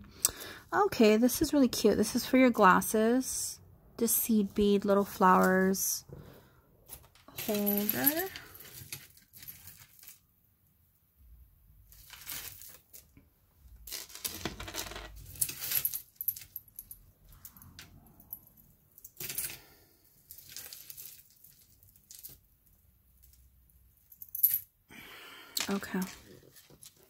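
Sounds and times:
metal chains and beads clinking: 6.9s - 10.2s, 11.9s - 13.1s, 13.9s - 24.8s, 25.6s - 27.0s.

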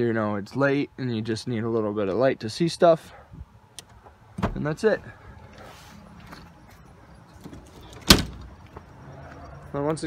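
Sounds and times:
glass hatch slamming shut: 8.0s - 8.5s.

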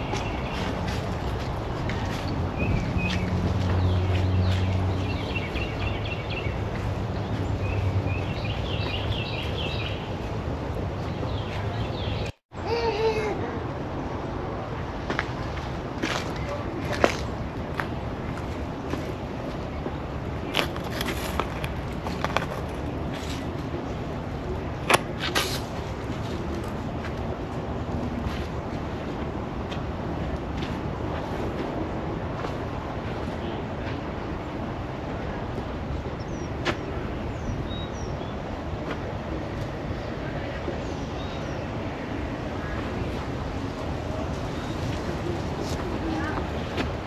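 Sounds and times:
outdoor background noise: 0.0s - 47.0s.

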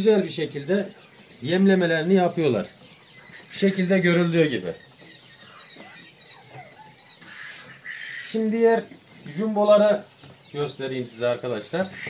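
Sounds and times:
quail chicks peeping: 0.0s - 12.0s.

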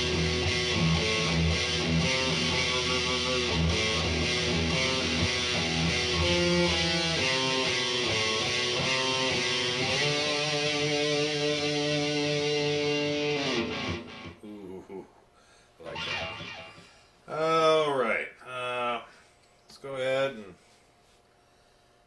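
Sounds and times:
distorted electric guitar riff: 0.0s - 14.4s, 15.8s - 17.0s.

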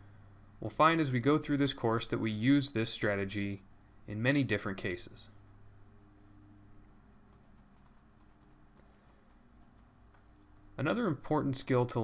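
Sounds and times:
low steady hum: 0.0s - 12.0s
rapid computer clicking: 6.7s - 10.5s.

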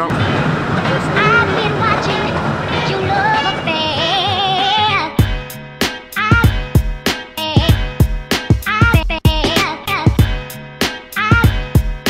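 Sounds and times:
person singing with vibrato: 0.8s - 5.4s.

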